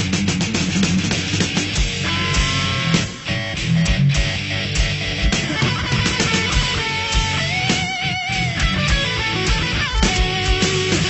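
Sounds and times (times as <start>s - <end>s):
bass: 0.0s - 11.0s
electric guitars: 0.0s - 11.0s.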